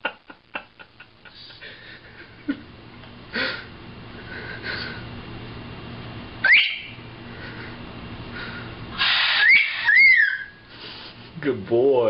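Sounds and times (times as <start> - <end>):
macaw raspy screech: 6.4 - 7.0, 9.0 - 10.7
macaw whistling: 6.4 - 7.0, 9.0 - 10.7.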